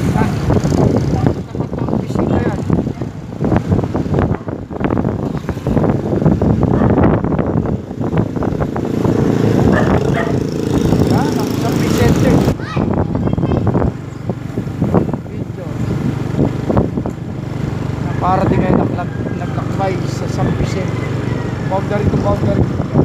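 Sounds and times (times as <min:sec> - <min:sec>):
rough vehicle engine running: 0:00.0 - 0:23.0.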